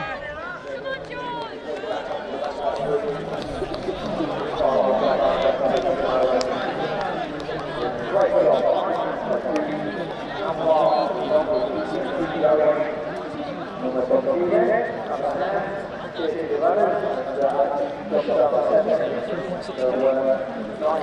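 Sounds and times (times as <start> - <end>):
spectators chattering: 0.0 - 21.0.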